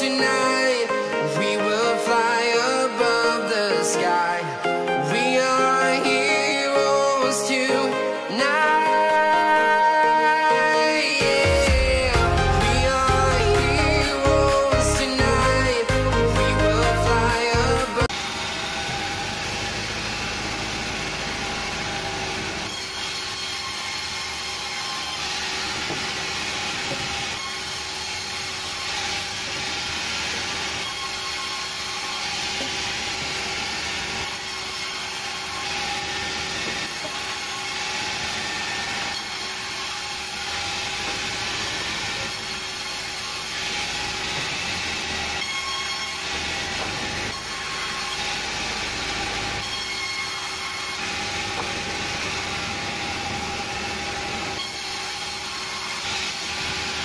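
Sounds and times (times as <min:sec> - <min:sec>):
pop music: 0:00.0 - 0:18.1
band saw whining: 0:00.0 - 0:57.0.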